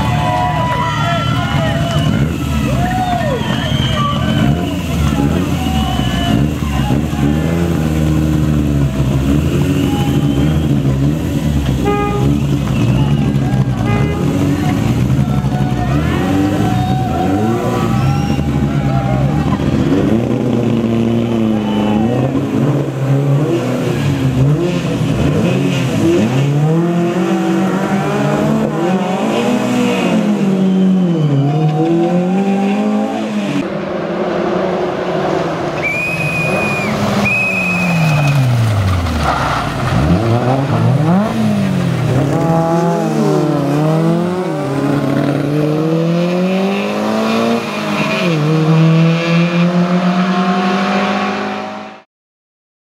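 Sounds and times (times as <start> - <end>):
rally car engine accelerating: 0.0 - 52.1.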